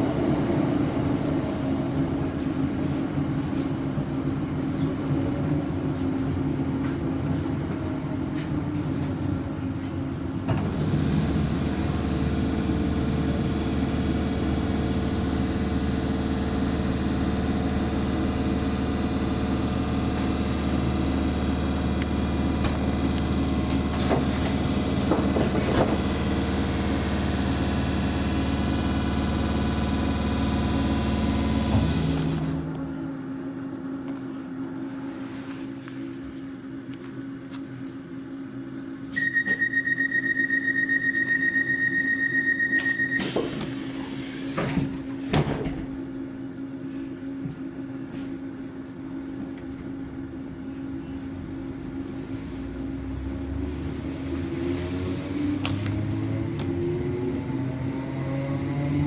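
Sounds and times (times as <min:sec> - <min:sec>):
train rumble: 0:00.0 - 0:11.9
electric train hum and whine: 0:00.0 - 0:59.0
brief clicks and squeals: 0:39.2 - 0:43.4.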